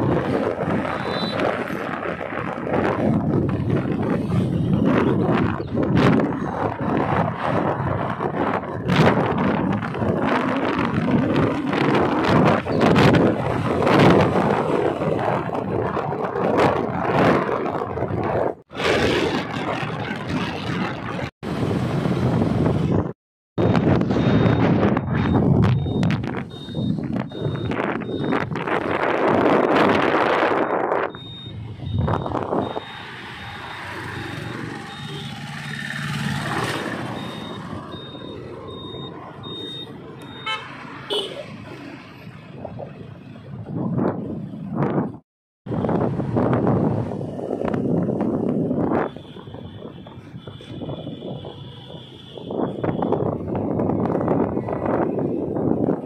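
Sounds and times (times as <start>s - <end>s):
passing vehicles rushing: 23.7s - 56.0s
faint high beep: 30.6s - 35.4s, 37.2s - 40.6s.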